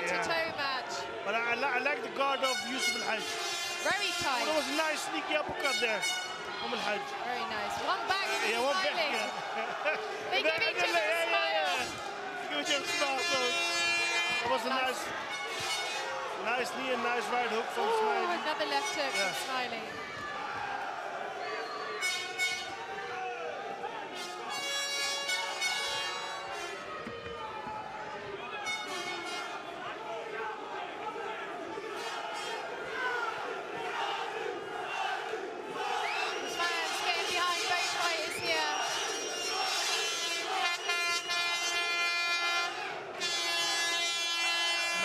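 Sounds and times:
crowd shouting and cheering: 0.0 - 45.0.

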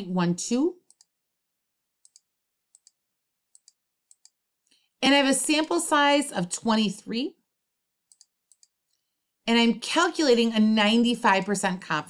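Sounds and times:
computer mouse clicks: 0.8 - 1.2, 2.0 - 4.8, 8.1 - 9.0.

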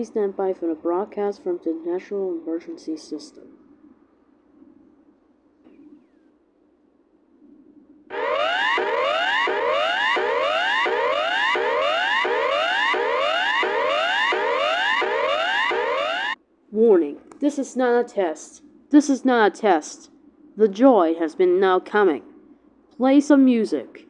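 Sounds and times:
rising alert tone sweep: 8.1 - 16.4
steady high tone: 8.1 - 16.4.

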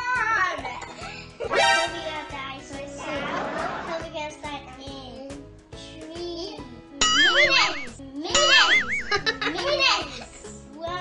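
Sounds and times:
child's voice: 0.0 - 0.9, 1.9 - 3.2, 3.9 - 8.8, 9.5 - 11.0
warbling bell-like ding: 7.0 - 9.3.

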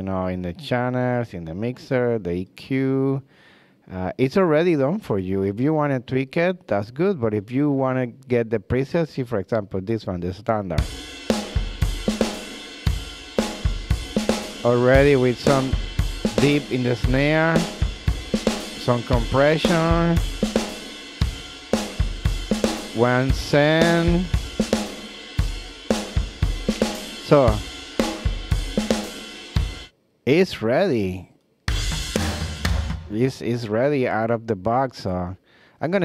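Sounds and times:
drum kit playing a steady beat: 10.8 - 30.0, 31.7 - 33.4.

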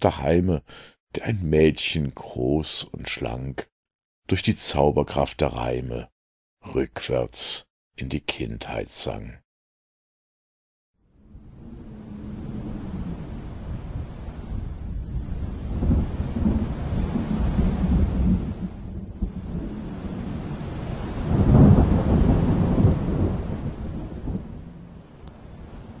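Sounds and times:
steady rain: 11.2 - 26.0
thunder rumbling: 11.2 - 26.0.

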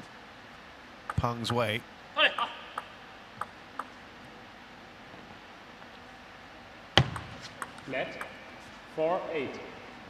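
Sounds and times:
table tennis ball clicks: 2.8 - 4.0.

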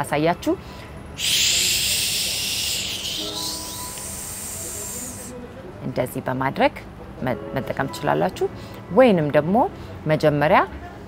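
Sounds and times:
woman making a hissing shh sound: 1.2 - 5.4.

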